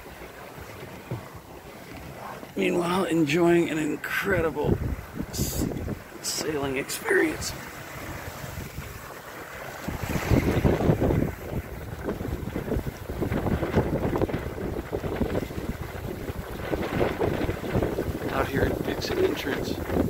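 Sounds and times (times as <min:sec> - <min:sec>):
water rushing along hull: 0:00.0 - 0:20.0
wind buffeting microphone: 0:03.4 - 0:20.0.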